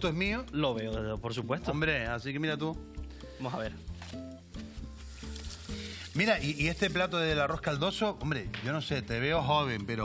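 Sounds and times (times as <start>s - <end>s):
background music with bass line: 0.0s - 10.0s
water running from a tap: 5.0s - 7.1s.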